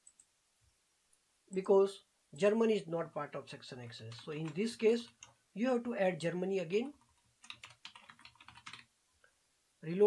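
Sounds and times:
keyboard typing clicks: 0:00.0 - 0:00.3, 0:07.4 - 0:08.9.

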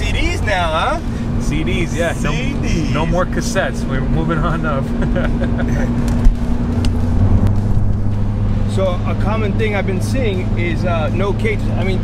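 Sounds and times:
car engine running at cruise: 0:00.0 - 0:12.0
road rumble: 0:00.0 - 0:12.0.

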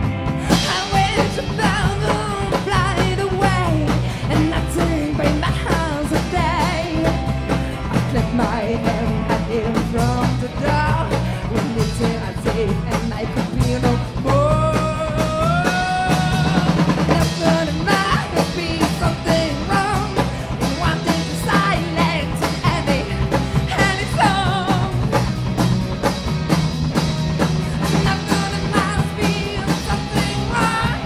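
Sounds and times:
drum kit: 0:00.0 - 0:31.0
electric bass: 0:00.0 - 0:31.0
electric guitar: 0:00.0 - 0:31.0
person singing: 0:00.4 - 0:25.3, 0:27.7 - 0:31.0.

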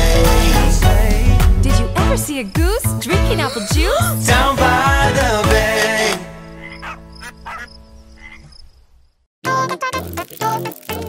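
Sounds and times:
bouncy children's music: 0:00.0 - 0:07.6, 0:09.4 - 0:11.0
cartoon frog croaks: 0:06.5 - 0:08.7.

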